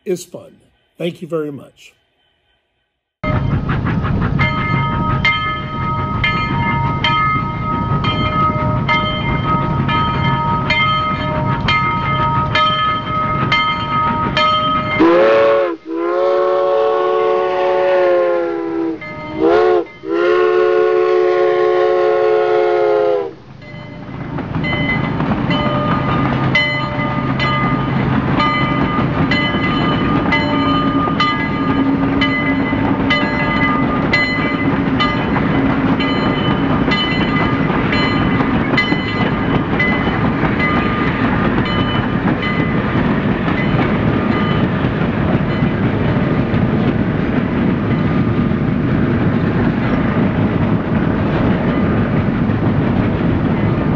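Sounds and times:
train wheels clicking over rail joints: 3.2 - 15.2, 23.5 - 53.9
train air horn blasts: 15.0 - 23.4.

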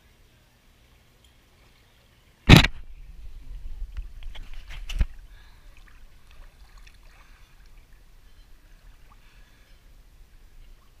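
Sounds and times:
water sloshing: 2.6 - 11.0.

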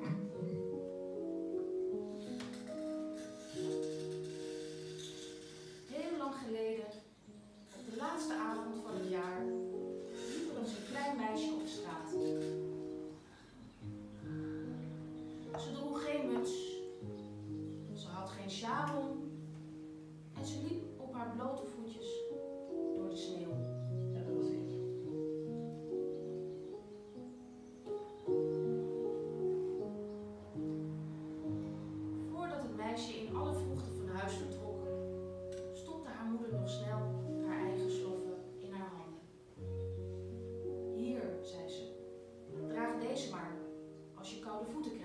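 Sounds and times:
electronic keyboard chords: 0.0 - 6.2, 7.0 - 44.3
woman speaking: 5.9 - 7.0, 7.8 - 9.6, 10.3 - 12.4, 15.6 - 16.9, 20.4 - 22.3, 32.2 - 34.9, 35.8 - 39.2, 41.0 - 41.9, 42.7 - 45.0.

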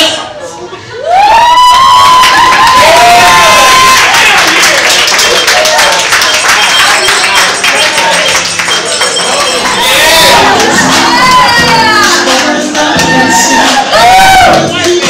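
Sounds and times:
crowd cheering and clapping: 1.0 - 15.0
man singing a high note: 11.5 - 15.0.

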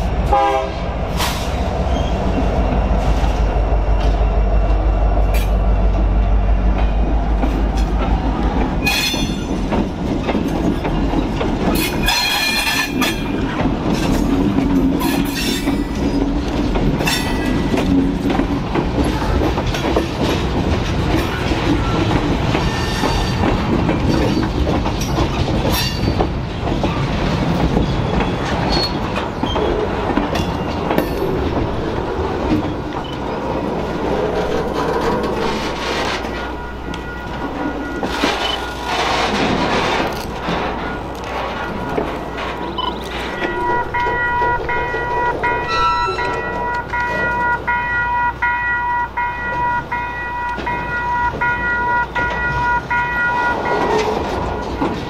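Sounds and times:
locomotive engine rumble: 0.0 - 55.0
train wheels clicking over rail joints: 1.0 - 55.0
high-pitched wheel squeals: 42.8 - 47.4.

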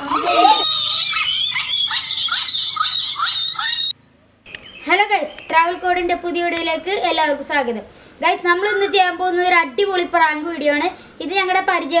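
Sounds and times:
high-pitched chatter of calls: 0.0 - 3.9, 8.5 - 9.5.

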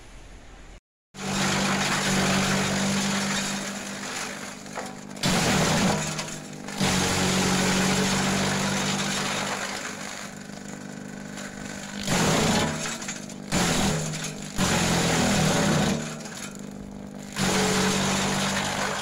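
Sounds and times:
garden shredder chopping branches: 1.2 - 19.0.

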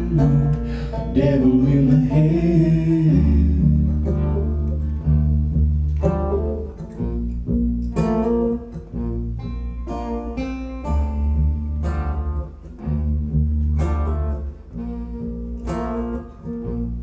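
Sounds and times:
person singing: 0.0 - 4.0
acoustic guitars strummed and picked: 0.0 - 17.0
low bass notes: 0.0 - 17.0.

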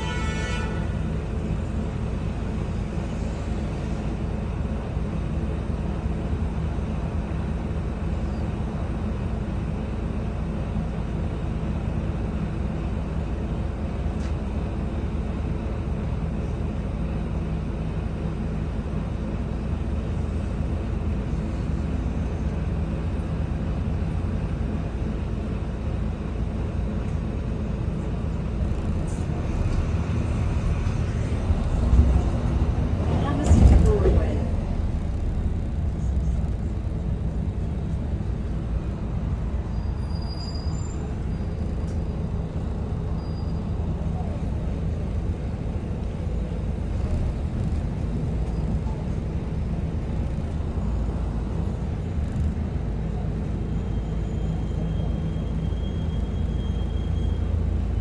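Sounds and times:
bus diesel engine idling: 0.0 - 58.0.

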